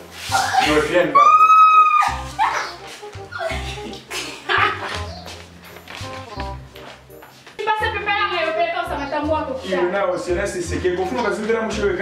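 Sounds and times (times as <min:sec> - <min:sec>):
background music with bass line: 0:00.0 - 0:12.0
dog-like yelps: 0:01.2 - 0:02.8.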